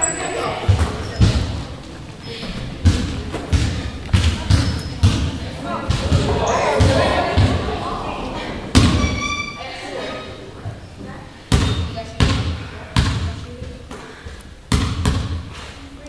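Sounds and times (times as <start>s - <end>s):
echoing chatter of people: 0.0s - 16.0s
basketball bouncing on hardwood floor: 2.8s - 5.3s, 5.9s - 7.6s, 11.5s - 13.8s, 14.7s - 15.4s.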